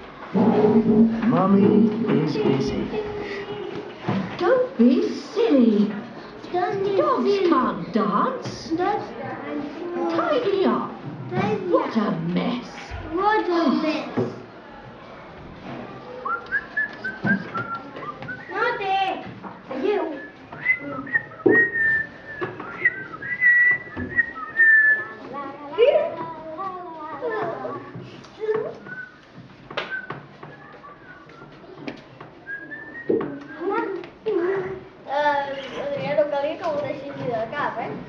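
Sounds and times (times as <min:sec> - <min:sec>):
child's voice: 0:06.5 - 0:07.4, 0:11.3 - 0:11.7, 0:25.2 - 0:28.8, 0:33.6 - 0:38.0
person whistling short notes: 0:20.2 - 0:25.2, 0:28.7 - 0:29.2.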